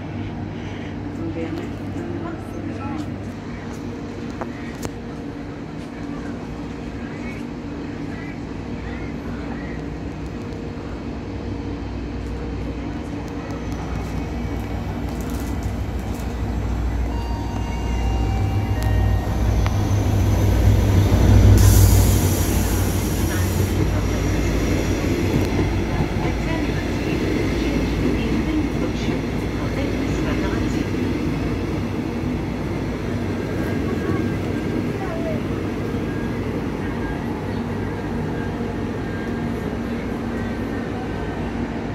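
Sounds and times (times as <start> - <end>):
locomotive rumble: 0.0 - 41.9.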